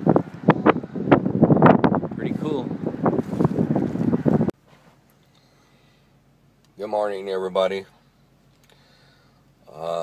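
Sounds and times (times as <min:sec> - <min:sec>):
wind buffeting microphone: 0:00.0 - 0:04.5.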